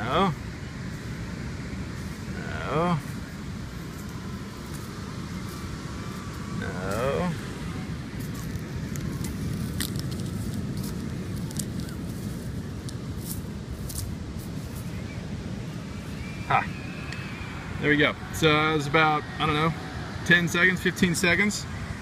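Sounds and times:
wind buffeting microphone: 0:00.0 - 0:22.0
crackling clicks of sand grains: 0:08.2 - 0:15.0.

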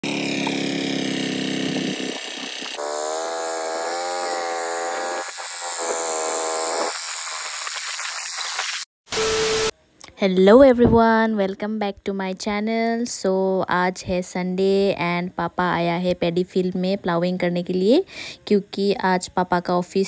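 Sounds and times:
power tiller engine running: 0:00.0 - 0:07.6
short steady tone: 0:09.1 - 0:09.8.

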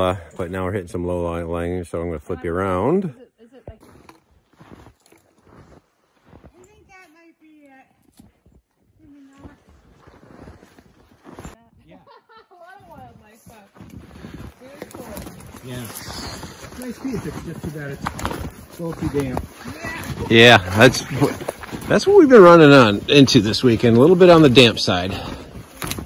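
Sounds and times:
footsteps crunching in snow: 0:03.8 - 0:11.6, 0:12.6 - 0:26.0.

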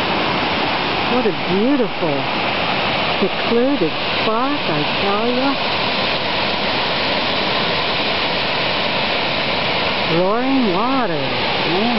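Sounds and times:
water rushing over waterfall: 0:00.0 - 0:11.9.

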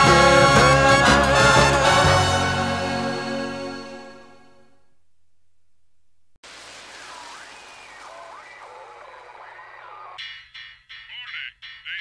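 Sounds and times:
steady hiss: 0:06.4 - 0:09.6.

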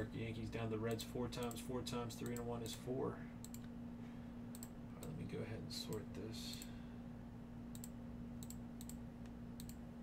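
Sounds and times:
low electrical hum: 0:00.0 - 0:10.0
computer mouse clicking: 0:04.5 - 0:05.2, 0:07.7 - 0:09.8.

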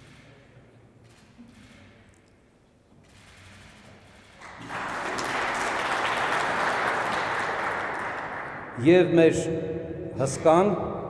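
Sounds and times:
audience applauding: 0:04.4 - 0:08.9
man's voice: 0:10.2 - 0:10.9.

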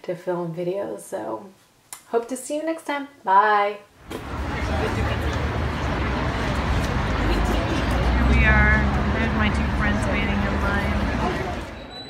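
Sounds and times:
people talking: 0:00.0 - 0:11.9
vehicle engine humming: 0:04.0 - 0:11.9.

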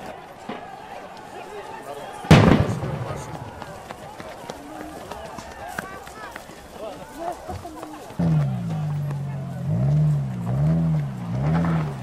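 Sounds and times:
crowd voices: 0:00.0 - 0:12.0
grenade explosion: 0:02.3 - 0:03.8.

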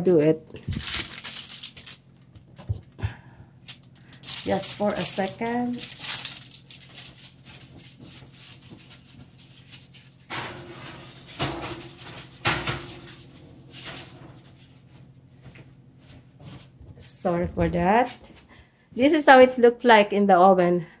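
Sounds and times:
steady low hum: 0:00.0 - 0:21.0
kitchen knocks and clunks: 0:10.3 - 0:13.2.

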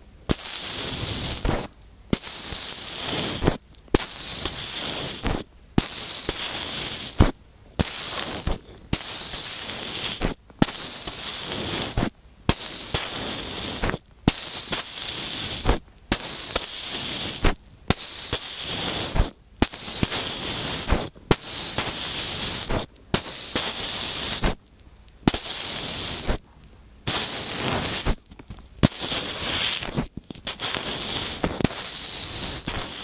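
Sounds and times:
sand crackling and crunching: 0:00.3 - 0:24.6, 0:25.2 - 0:26.4, 0:27.1 - 0:33.0.

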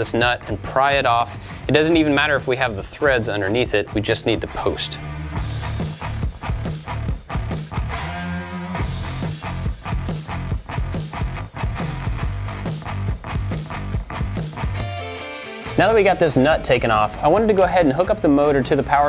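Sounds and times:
rock music with guitar: 0:00.0 - 0:19.0.

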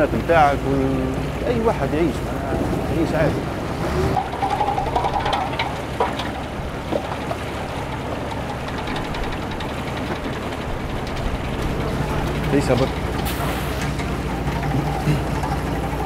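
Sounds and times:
boat engine chugging: 0:00.0 - 0:16.0.

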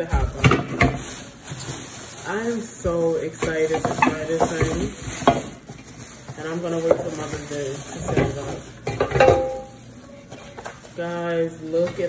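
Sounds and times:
plastic wrapping crinkling: 0:00.0 - 0:11.8.

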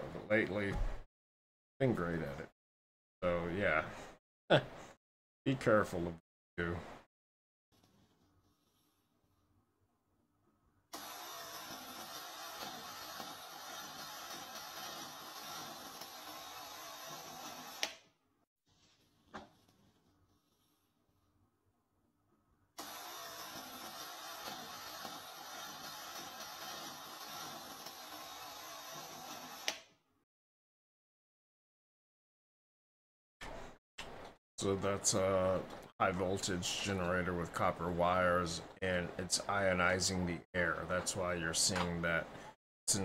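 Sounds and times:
electrical discharge hiss and buzz: 0:11.0 - 0:17.8, 0:22.8 - 0:29.7.

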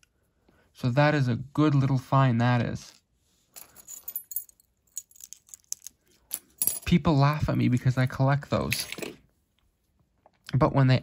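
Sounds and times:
metal jewelry clinking: 0:03.5 - 0:07.0.

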